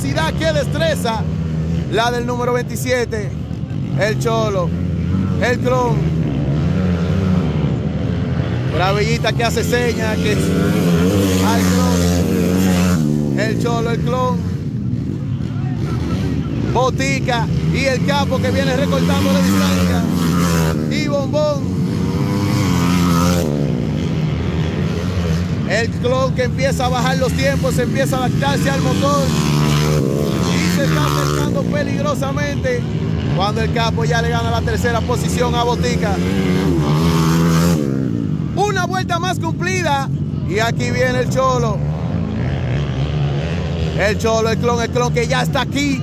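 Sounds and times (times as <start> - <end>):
motocross bikes racing past: 0.0 - 46.0.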